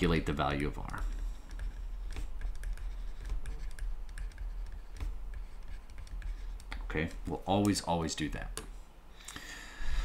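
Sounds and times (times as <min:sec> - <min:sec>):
stylus tapping on tablet: 0:00.8 - 0:06.9.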